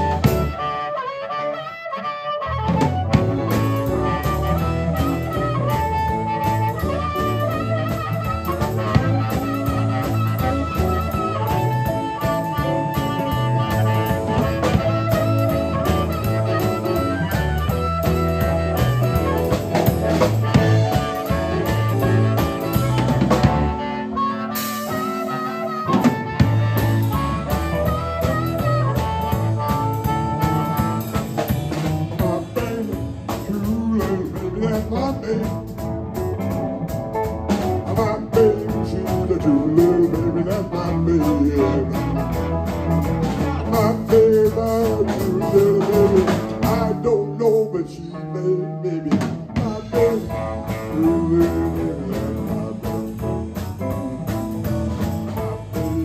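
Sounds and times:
drum kit: 0.0s - 1.1s, 2.4s - 56.0s
electric bass: 0.0s - 1.8s, 2.4s - 56.0s
harmonica long held notes: 0.0s - 35.8s, 49.6s - 56.0s
electric guitar: 0.0s - 56.0s.

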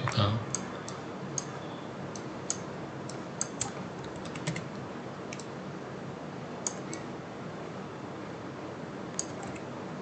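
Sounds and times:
mouse and keyboard clicks: 9.2s - 9.6s.

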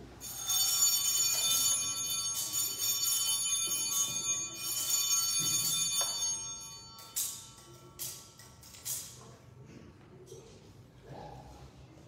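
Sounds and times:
small bells ringing: 0.0s - 9.2s.

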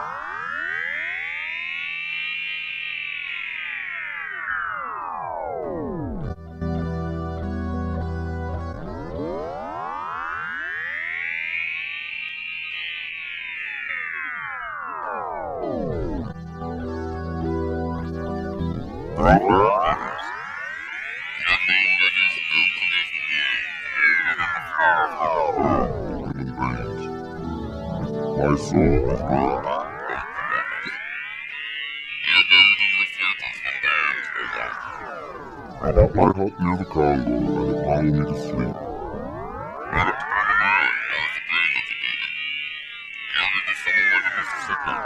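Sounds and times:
electronic tone pitch sweep: 8.6s - 45.0s
instrumental music: 26.8s - 29.8s, 35.1s - 39.5s.

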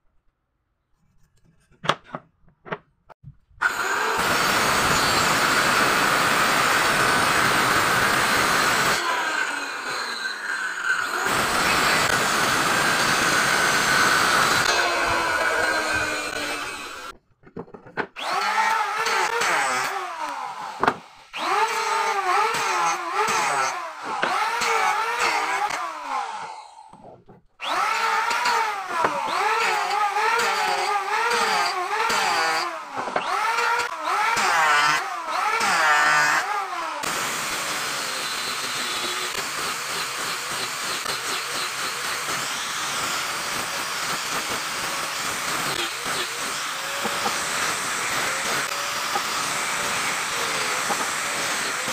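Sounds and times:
angle grinder sanding wood: 3.6s - 17.2s, 18.2s - 26.8s, 27.6s - 51.9s
circular saw cutting wood: 3.6s - 17.2s, 18.1s - 51.9s.

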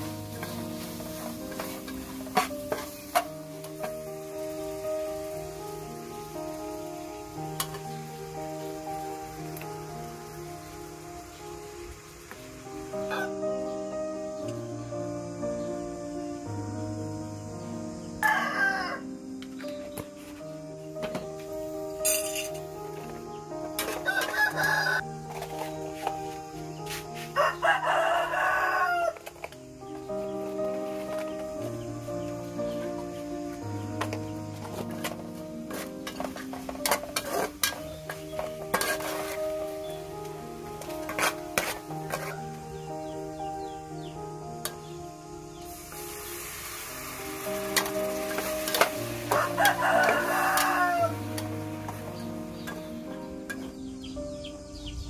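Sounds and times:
background music: 0.0s - 55.0s
rooster crowing: 13.1s - 13.4s, 18.2s - 19.1s, 23.9s - 25.1s, 27.3s - 29.3s, 49.2s - 51.6s.

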